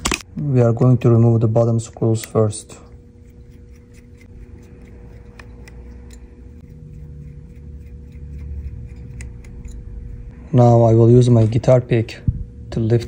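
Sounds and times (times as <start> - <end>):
low hum: 0.0 - 13.0
screwdriver clicking and ticking: 3.5 - 6.3.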